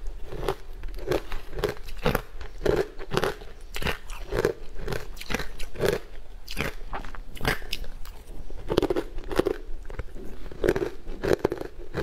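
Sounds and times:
biting and chewing ice: 0.0 - 12.0.

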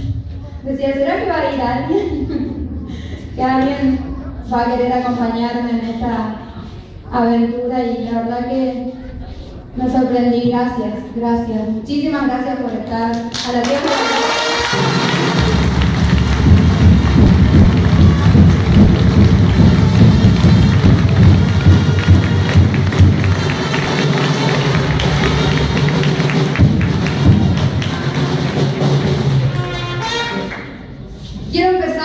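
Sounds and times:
audience applauding: 13.3 - 29.7
loud music with deep bass: 15.1 - 29.4.

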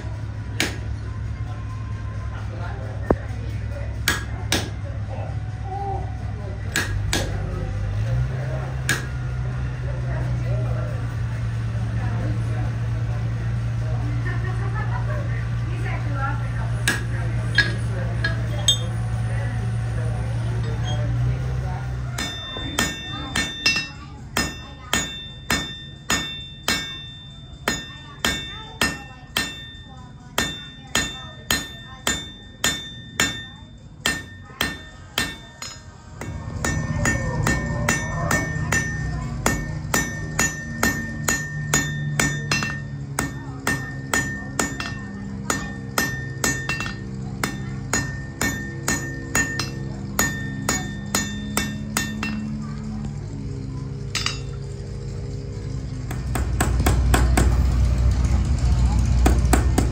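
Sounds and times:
steady low rumble: 0.0 - 59.9
hammer ringing on anvil: 4.0 - 4.8, 6.6 - 7.5, 8.8 - 9.3, 16.8 - 19.9, 20.6 - 59.9.

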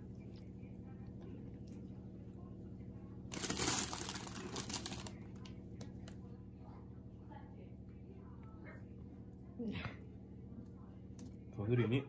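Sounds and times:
low steady hum: 0.0 - 12.0
plastic bag crinkling: 3.3 - 5.3.

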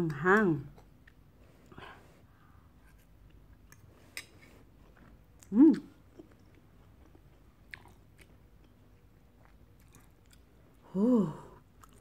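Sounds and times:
chewing noodles: 3.2 - 10.8, 11.7 - 12.0.

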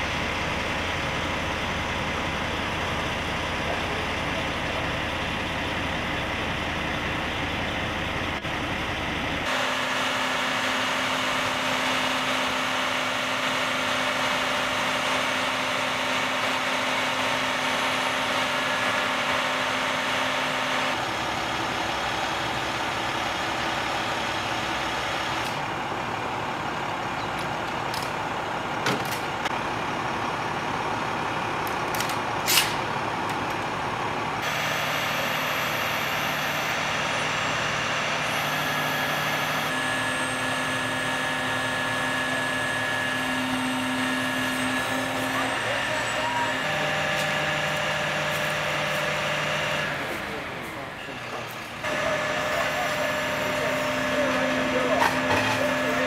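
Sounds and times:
truck engine running: 0.0 - 56.0.

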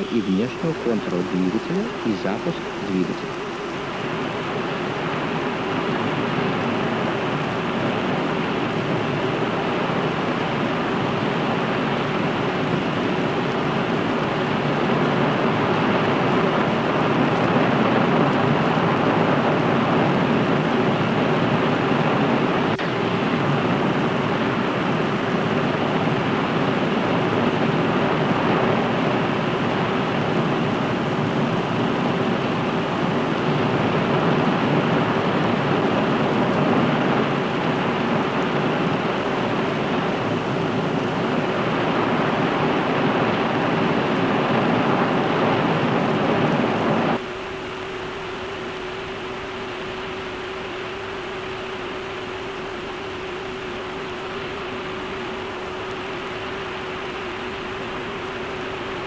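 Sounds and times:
faint hum: 0.0 - 59.0.

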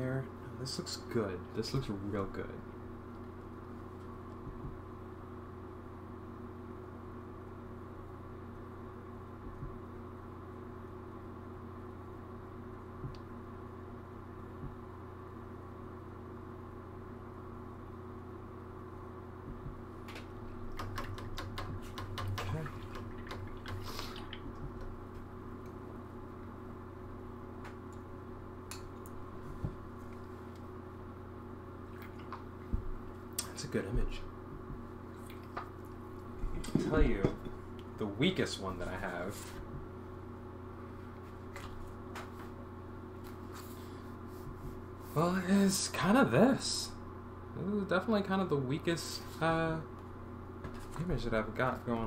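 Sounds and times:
low electrical hum: 0.0 - 52.0.

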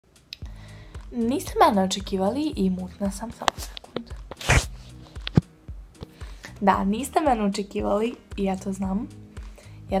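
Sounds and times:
faint background music: 0.1 - 10.0
rustling noise: 3.4 - 5.5.

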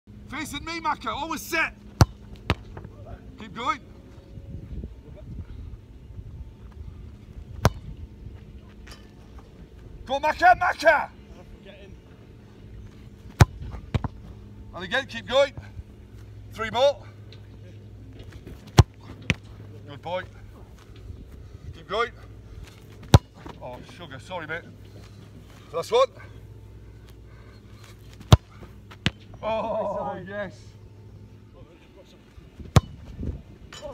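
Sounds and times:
steady low rumble: 0.1 - 10.4, 11.1 - 33.8
wind rumbling on microphone: 4.2 - 8.6, 32.5 - 33.7.

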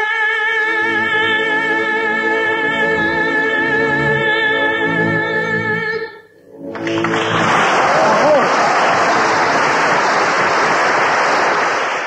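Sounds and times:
audience applauding: 6.7 - 12.0.

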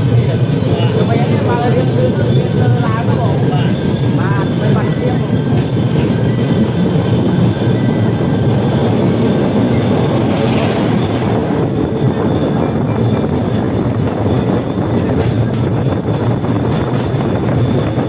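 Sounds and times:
motorised rail cart engine rumble: 0.0 - 18.0
wheels on rails: 0.0 - 18.0.

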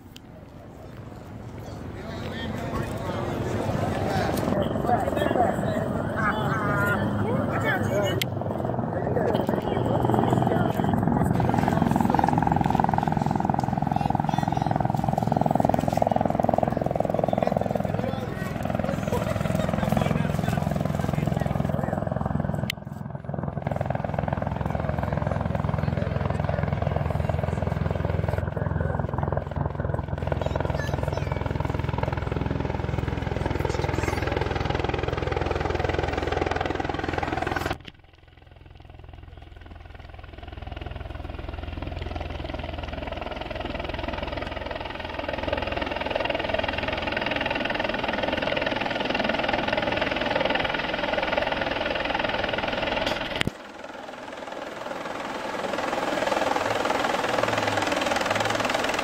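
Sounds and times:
helicopter rotor and engine: 0.0 - 59.0.

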